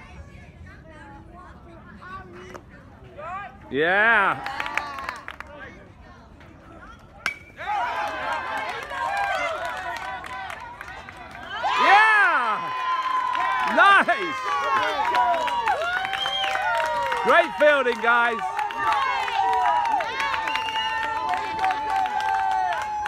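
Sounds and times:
bat hitting ball: 7.2s - 7.7s
spectators shouting and cheering: 7.3s - 23.0s.

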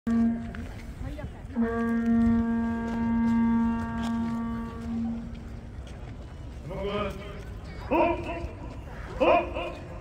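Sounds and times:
horn blowing steady pitch: 0.1s - 5.6s.

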